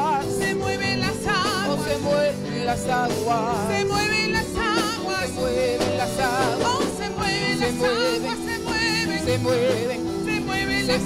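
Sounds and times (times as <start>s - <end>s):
women singing with vibrato: 0.0s - 11.0s
worship band playing: 0.0s - 11.0s.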